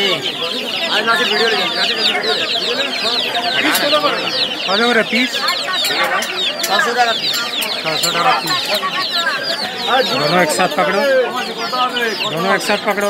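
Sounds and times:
chicks peeping: 0:00.0 - 0:13.0.

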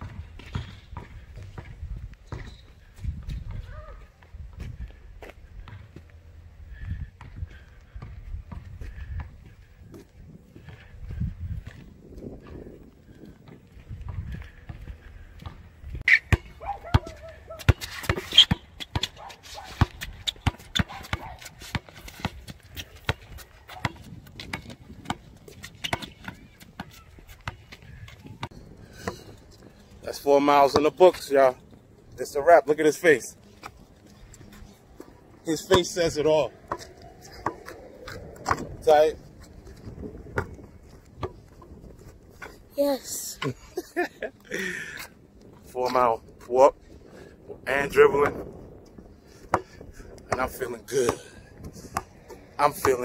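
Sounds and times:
basketball bouncing on concrete: 0:00.0 - 0:03.8, 0:05.2 - 0:06.1, 0:16.3 - 0:29.3, 0:35.6 - 0:38.8, 0:40.2 - 0:41.5, 0:49.5 - 0:53.0.

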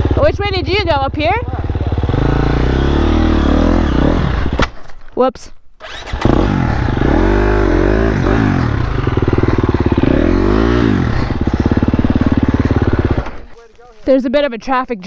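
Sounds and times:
dirt bike engine revving: 0:00.0 - 0:04.6, 0:05.8 - 0:13.6.

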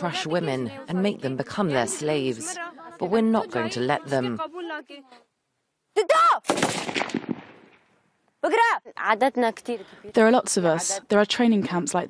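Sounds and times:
rifle shot echoing: 0:06.5 - 0:07.8.

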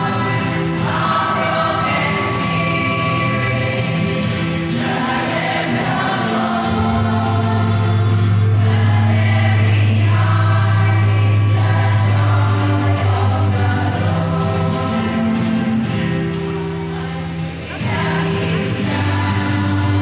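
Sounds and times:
group singing: 0:00.0 - 0:20.0
ukuleles and plucked strings: 0:00.0 - 0:20.0.

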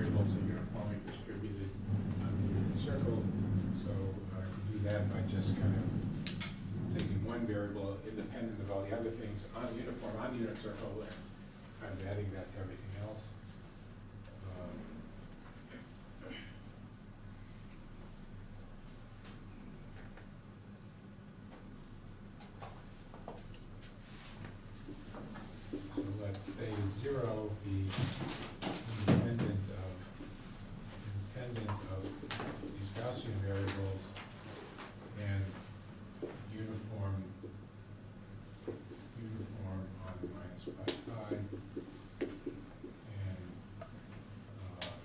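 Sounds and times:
low hum: 0:00.0 - 0:28.6
marker writing on whiteboard: 0:40.2 - 0:43.0.

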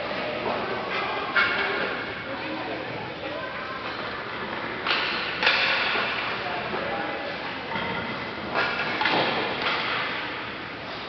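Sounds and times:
hockey sticks hitting puck: 0:04.8 - 0:06.4, 0:07.8 - 0:10.3.

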